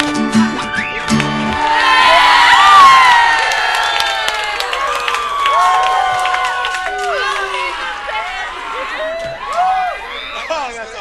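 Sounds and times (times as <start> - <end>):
crowd cheering and shouting: 0.6 - 11.0.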